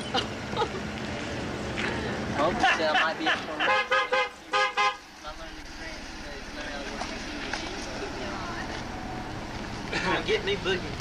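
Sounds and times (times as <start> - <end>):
people talking in background: 1.8 - 11.0.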